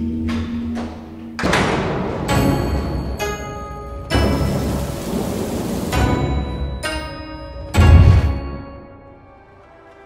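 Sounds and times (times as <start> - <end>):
low thunder rumble: 4.2 - 6.5
rushing hiss of rain: 4.2 - 6.6.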